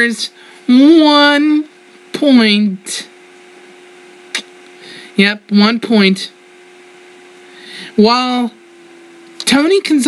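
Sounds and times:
low electrical hum: 0:00.0 - 0:10.0.

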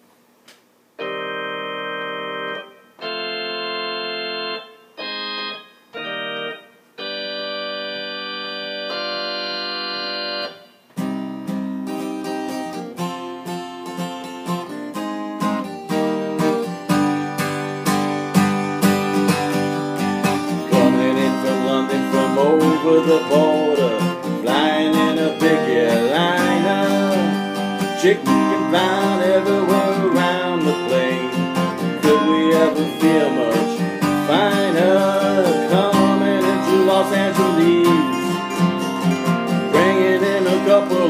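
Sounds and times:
organ-style keyboard chords: 0:01.0 - 0:41.0
strummed guitar: 0:01.0 - 0:41.0.

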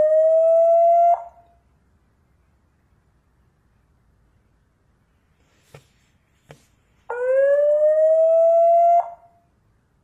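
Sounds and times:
alarm siren rising tone: 0:07.1 - 0:09.2.

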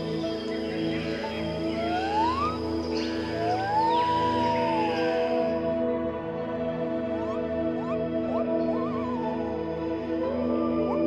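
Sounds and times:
background music with gliding lead: 0:00.0 - 0:11.0.

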